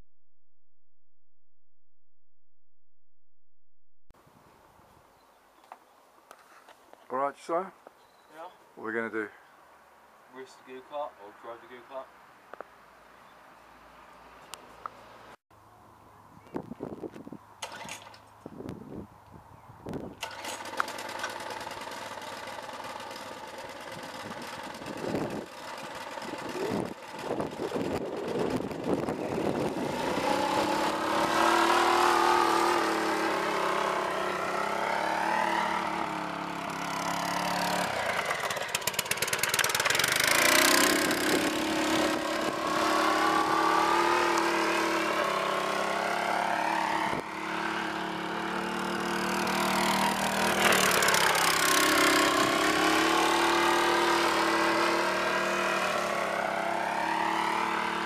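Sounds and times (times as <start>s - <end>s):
go-kart engine running: 17.6s - 18.1s, 20.2s - 58.0s.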